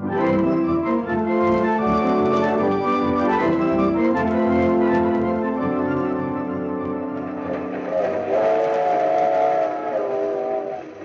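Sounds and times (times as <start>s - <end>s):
organ chords: 0.0s - 10.8s.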